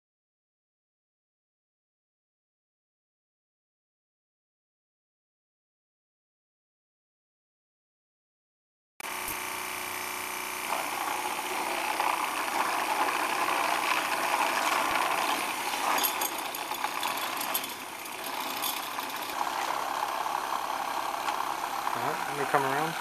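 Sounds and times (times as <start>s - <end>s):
motor-driven machine running: 9.0s - 23.0s.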